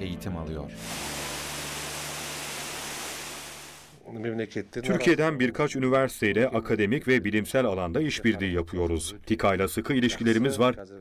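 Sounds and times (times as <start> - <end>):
fountain water splashing: 0.8 - 4.0.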